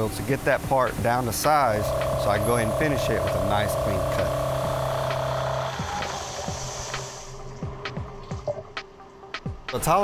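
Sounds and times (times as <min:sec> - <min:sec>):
coolant spray hiss: 0:00.0 - 0:07.6
faint background music: 0:00.0 - 0:10.0
grinding machine hum: 0:01.6 - 0:06.4.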